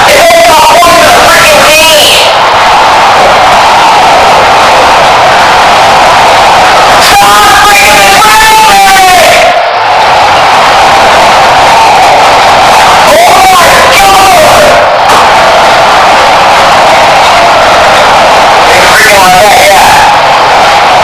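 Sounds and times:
person screaming and yelling: 0.0 - 2.4, 7.0 - 9.6, 12.7 - 14.9, 18.6 - 20.1.

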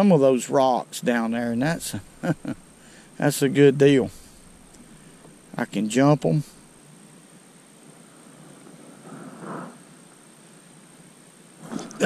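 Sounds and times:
outdoor background hiss: 0.0 - 12.0
thin high whine: 1.0 - 6.9.

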